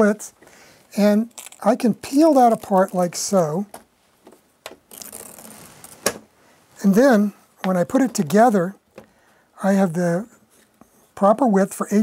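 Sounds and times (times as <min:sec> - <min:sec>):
cork strip rustling and scraping: 0:01.2 - 0:06.2.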